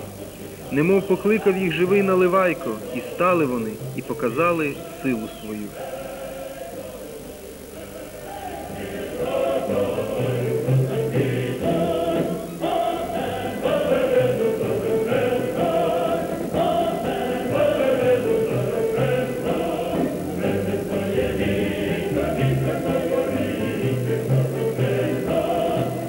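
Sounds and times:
choir singing with music: 0.0s - 26.0s.

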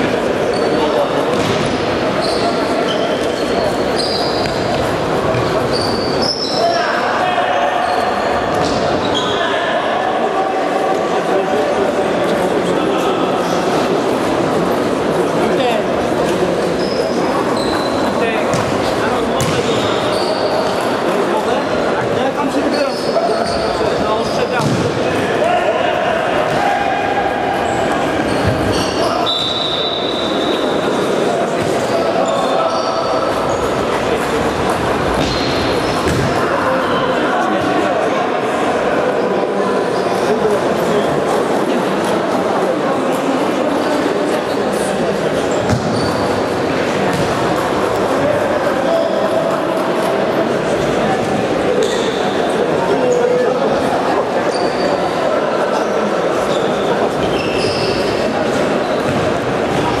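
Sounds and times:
indistinct voices in sports hall: 0.0s - 60.0s
ball game play noise: 0.2s - 9.4s, 12.3s - 37.9s, 44.0s - 52.9s, 56.4s - 60.0s
shoes squeaking on court floor: 0.4s - 6.9s, 7.8s - 9.5s, 15.5s - 21.1s, 22.0s - 25.0s, 27.6s - 37.1s, 44.3s - 49.9s, 50.7s - 53.4s, 54.4s - 60.0s
ball being kicked: 19.4s - 19.6s.

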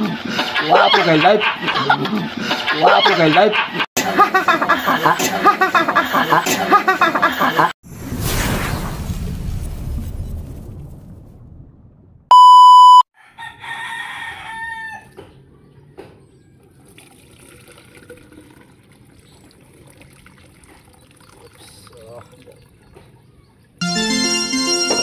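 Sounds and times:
electronic beep: 12.3s - 13.0s
rooster crowing: 13.2s - 15.2s
liquid pouring through a strainer: 16.8s - 22.6s.

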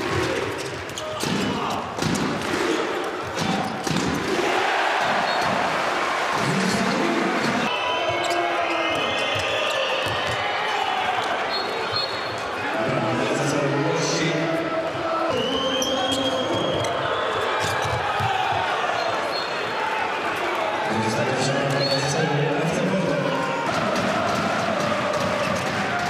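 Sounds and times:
arena crowd noise: 0.0s - 26.0s
ball bouncing on indoor court: 3.2s - 4.3s, 9.2s - 10.5s, 17.6s - 18.7s.

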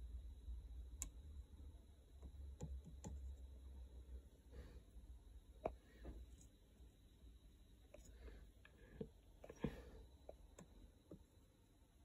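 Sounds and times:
low room hum: 0.0s - 12.0s
faint clicks and taps: 2.1s - 3.4s, 7.9s - 11.4s.

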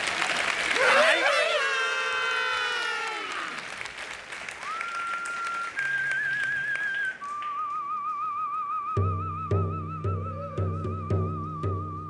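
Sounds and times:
applause: 0.0s - 8.5s
man whistling a melody: 4.6s - 12.0s.

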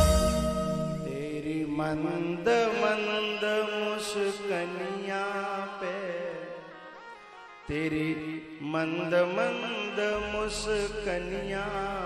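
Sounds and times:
person singing chant: 0.0s - 6.7s, 7.7s - 12.0s.

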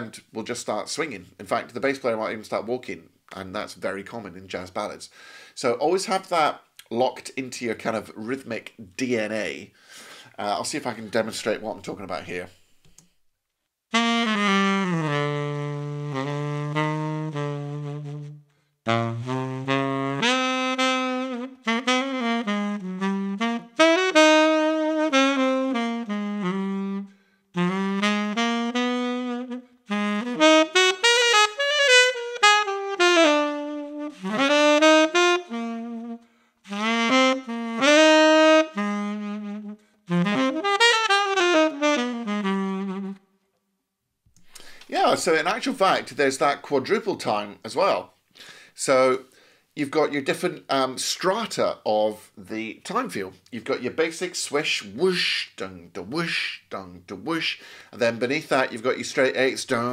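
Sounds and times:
tenor saxophone playing: 13.9s - 43.4s, 54.7s - 55.6s, 56.2s - 56.6s.

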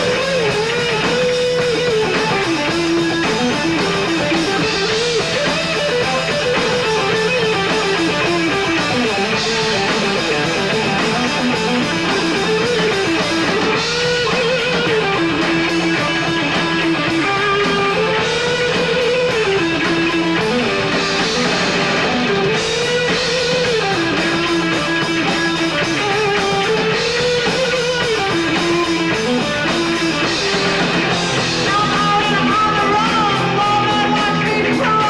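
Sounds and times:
bass guitar: 0.0s - 35.0s
drum kit: 0.0s - 35.0s
electric guitar lead: 0.0s - 35.0s.

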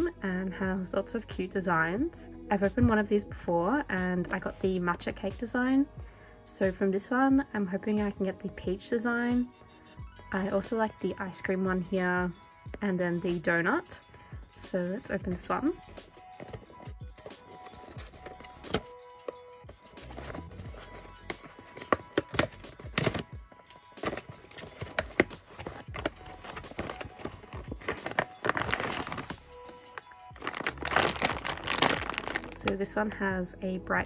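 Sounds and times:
background music: 0.0s - 34.0s
plastic bag crinkling: 24.0s - 32.7s.

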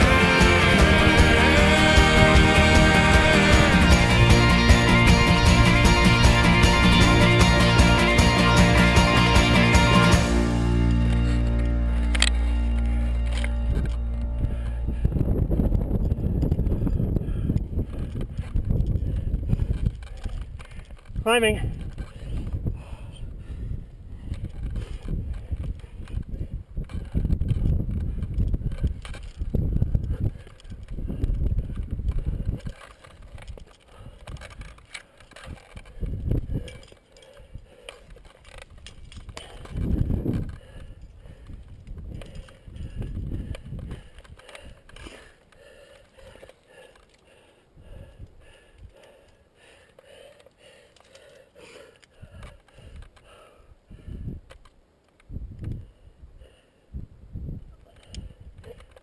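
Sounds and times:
climbing gear clinking: 0.0s - 53.6s
wind buffeting microphone: 13.5s - 34.7s, 35.4s - 45.1s, 47.7s - 49.1s, 52.2s - 54.5s, 55.3s - 58.8s.

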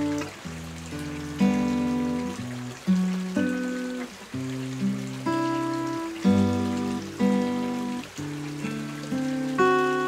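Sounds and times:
acoustic guitar chords: 0.0s - 10.0s
mountain stream rushing: 0.0s - 10.0s.

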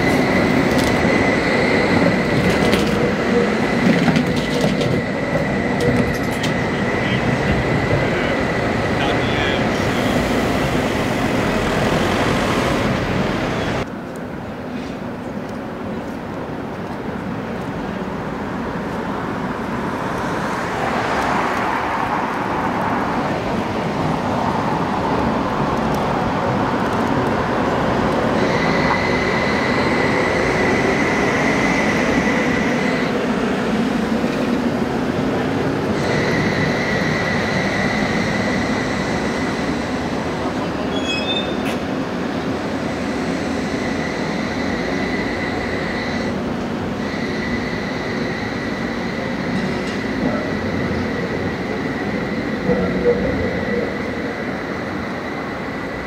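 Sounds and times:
steady high whine: 0.0s - 14.4s, 20.7s - 56.0s
tram rolling on rails: 0.0s - 56.0s.

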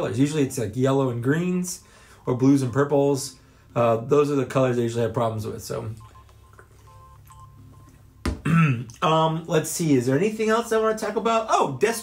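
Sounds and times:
faint short beeping tones: 6.0s - 8.3s.

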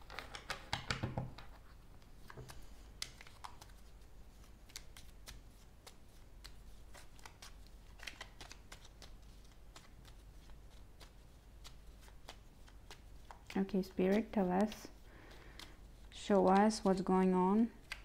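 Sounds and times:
cards being shuffled: 0.0s - 17.0s, 17.8s - 18.0s.

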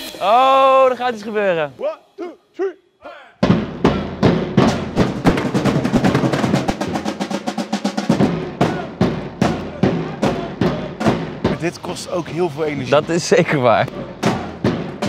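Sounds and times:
drum band playing: 3.4s - 15.0s.

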